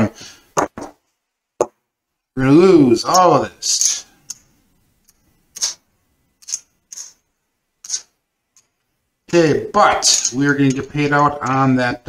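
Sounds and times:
casino chips clicking: 0:05.1 - 0:05.8, 0:06.4 - 0:07.2.

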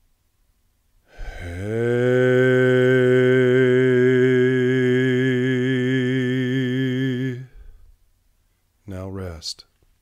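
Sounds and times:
man chanting low note: 0:01.3 - 0:07.5.

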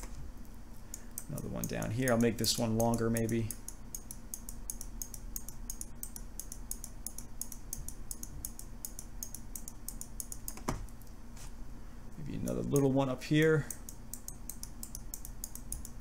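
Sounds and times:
steady low hum: 0:00.0 - 0:16.0
rapid high-pitched clicking: 0:00.8 - 0:10.6, 0:13.6 - 0:16.0.

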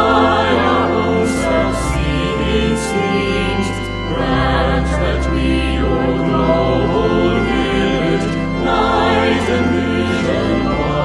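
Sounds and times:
church organ bass notes: 0:00.0 - 0:11.0
group singing a hymn: 0:00.0 - 0:11.0.

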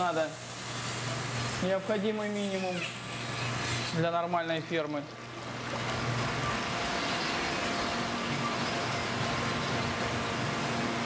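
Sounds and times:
faint steady hum: 0:00.0 - 0:11.0
water circulating through tanks: 0:00.0 - 0:11.0.

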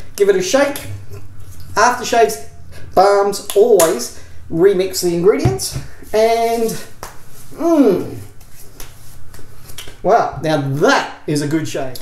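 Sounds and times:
hands patting and rubbing skin: 0:07.0 - 0:07.5, 0:08.4 - 0:10.0.

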